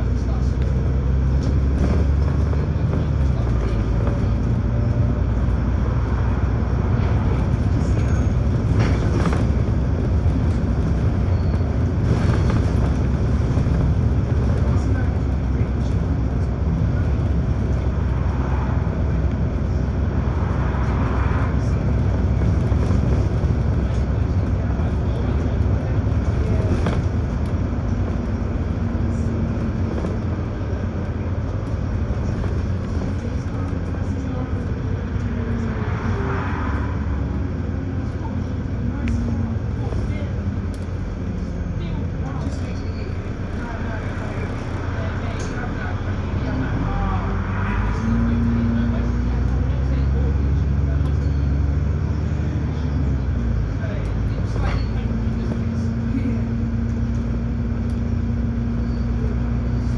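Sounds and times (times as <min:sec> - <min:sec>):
bus engine and road rumble: 0:00.0 - 0:59.9.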